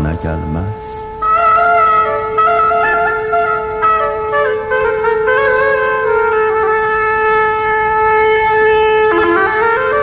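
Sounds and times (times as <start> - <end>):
instrumental music long held note: 0.0 - 10.0.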